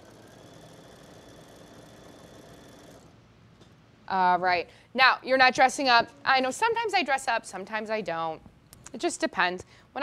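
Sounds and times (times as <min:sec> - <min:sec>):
embroidery machine hum: 0:00.0 - 0:03.2.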